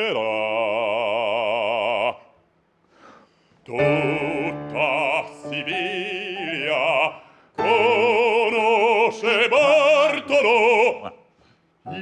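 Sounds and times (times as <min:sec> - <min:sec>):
operatic bass voice singing: 0:03.7 - 0:11.2.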